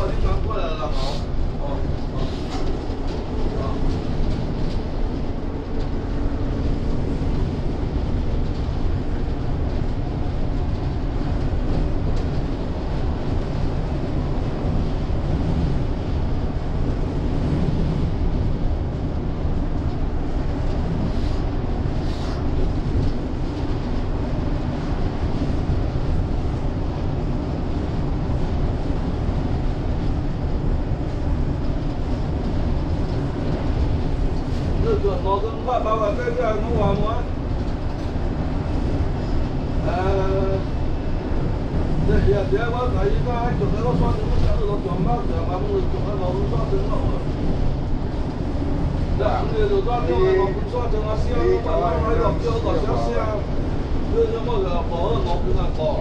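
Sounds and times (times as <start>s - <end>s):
bus road and drivetrain rumble: 0.0s - 56.0s.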